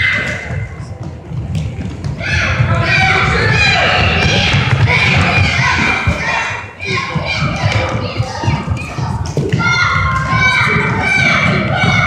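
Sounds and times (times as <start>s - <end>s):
running footsteps on wooden floor: 0.9s - 12.0s.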